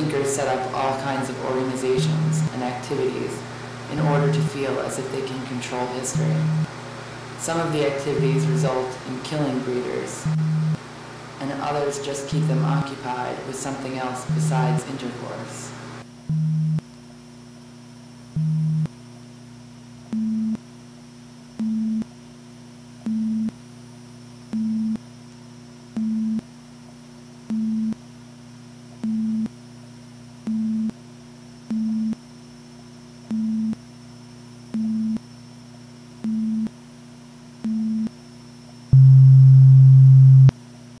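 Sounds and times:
steady low hum: 0.0 - 41.0
long low electronic tone: 2.0 - 2.5, 6.0 - 6.7, 7.6 - 10.8, 12.3 - 13.0, 14.2 - 14.9, 38.9 - 40.5
electronic sine-tone beeps: 6.1 - 6.7, 8.1 - 8.7, 10.2 - 10.8, 14.3 - 14.8, 16.3 - 16.8, 18.3 - 18.9, 20.1 - 20.6, 21.6 - 22.1, 23.0 - 23.6, 24.5 - 25.0, 26.0 - 26.4, 27.5 - 28.0, 29.0 - 29.5, 30.5 - 31.0, 31.7 - 32.2, 33.3 - 33.8, 34.7 - 35.3, 36.2 - 36.7, 37.6 - 38.1, 38.9 - 40.5.

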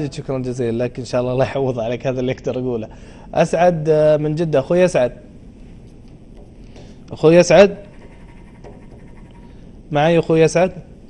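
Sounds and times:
faint steady background hiss: 0.0 - 11.0.

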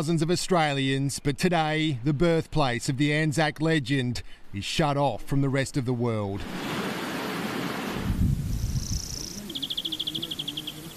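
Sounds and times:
birds chirping: 6.5 - 10.9
high buzzy bird trill: 7.6 - 10.9.

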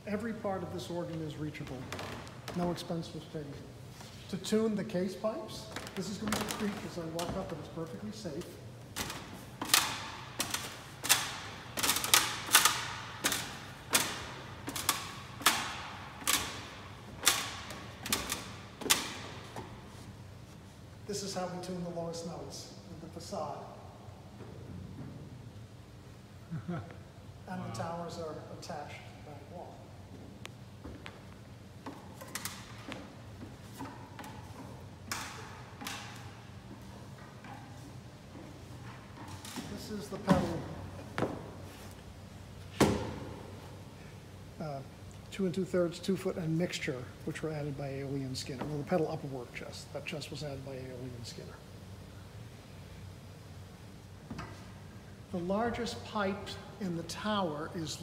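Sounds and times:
steady low hum: 0.0 - 58.0
footsteps on wooden ladder rungs: 5.6 - 20.7, 30.1 - 42.1.

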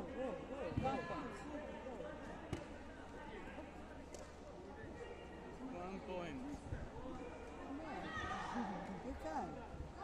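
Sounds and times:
background voices in a hall: 0.0 - 10.0.

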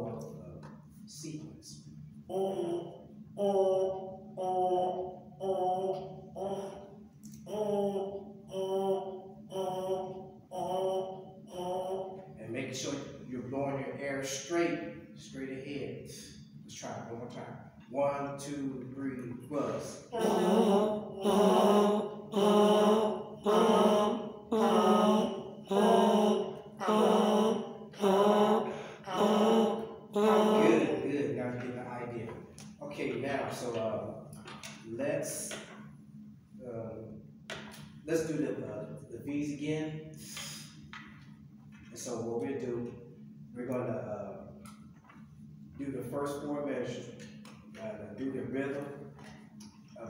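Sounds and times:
brass mouthpiece buzzing notes: 2.2 - 12.4, 19.8 - 31.3.

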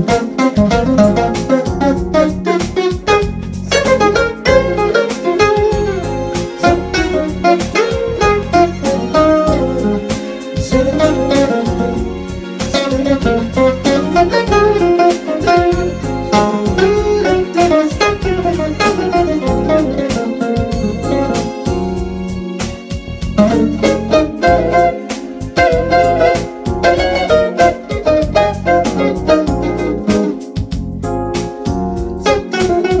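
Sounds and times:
bass: 0.0 - 33.0
electric guitar jazz solo: 0.0 - 33.0
keyboard chords: 0.0 - 33.0.

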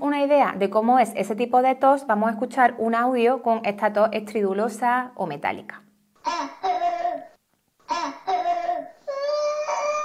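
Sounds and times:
child barking coughs: 6.3 - 9.0.

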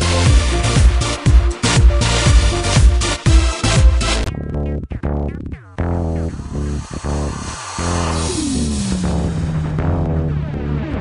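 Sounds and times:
music with pulsing beat: 0.0 - 11.0.

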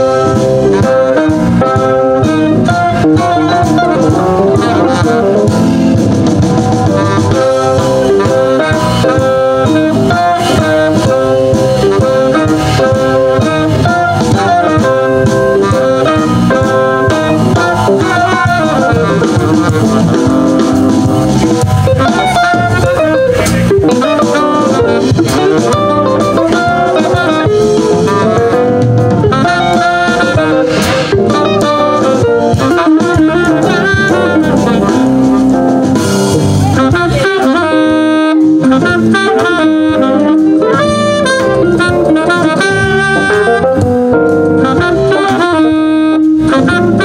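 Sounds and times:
drum kit: 0.0 - 47.0
electric guitars: 0.0 - 47.0
saxophone: 0.0 - 47.0.

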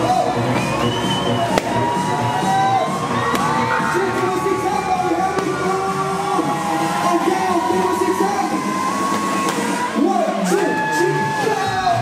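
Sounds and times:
crowd noise: 0.0 - 12.0
dance-pop music through sound system: 0.0 - 12.0.

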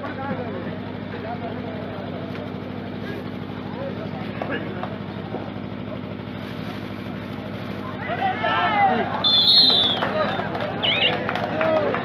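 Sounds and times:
steady low hum: 0.0 - 12.0
spectators shouting: 7.8 - 12.0.

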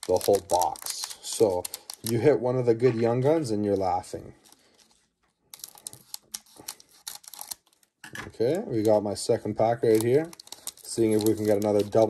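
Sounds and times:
scissors snipping foil: 5.6 - 7.8, 9.9 - 12.0.

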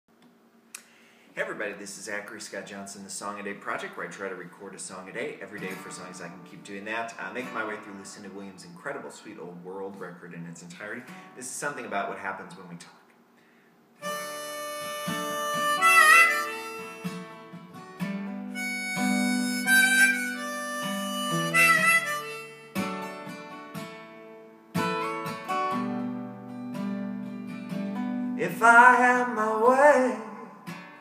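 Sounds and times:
strummed acoustic guitar: 5.5 - 8.7, 14.0 - 31.0
harmonica with bent notes: 14.0 - 23.5.

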